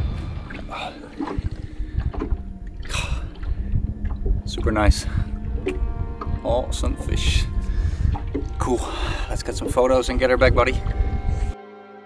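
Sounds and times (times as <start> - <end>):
water lapping: 0.0 - 11.6
wind buffeting microphone: 0.0 - 11.6.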